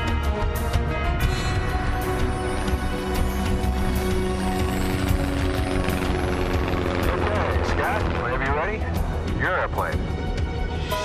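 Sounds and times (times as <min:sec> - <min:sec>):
film music: 0:00.0 - 0:11.0
propeller plane droning: 0:01.6 - 0:10.4.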